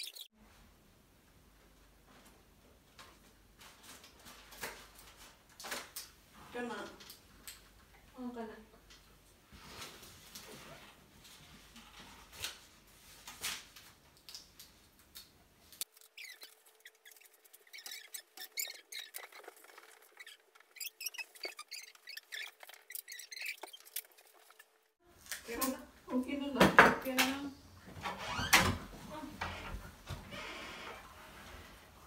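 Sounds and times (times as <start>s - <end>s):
balloons squeaking: 15.8s - 24.9s.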